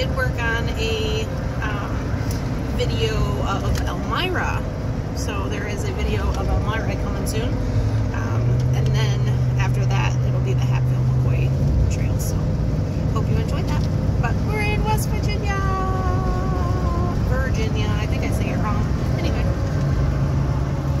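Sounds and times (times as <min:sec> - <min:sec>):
car road and engine noise: 0:00.0 - 0:21.0
low hum: 0:00.0 - 0:21.0.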